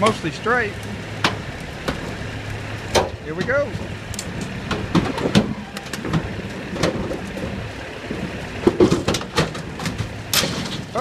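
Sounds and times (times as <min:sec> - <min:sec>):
truck engines running under load: 0:00.0 - 0:11.0
trailer body snapping and cracking: 0:08.2 - 0:11.0.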